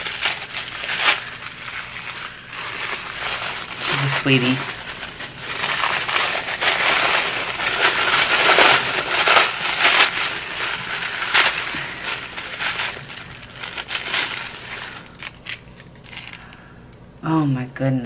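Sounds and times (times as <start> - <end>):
tissue paper crinkling: 0.0 - 16.5.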